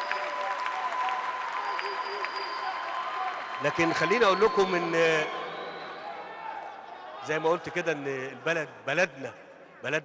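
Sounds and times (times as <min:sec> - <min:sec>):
congregation applauding: 0:00.0 - 0:06.2.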